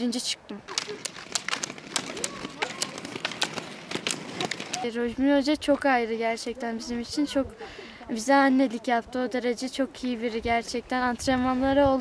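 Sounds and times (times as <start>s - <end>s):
ski pole tips clicking on asphalt: 0.7s - 5.0s.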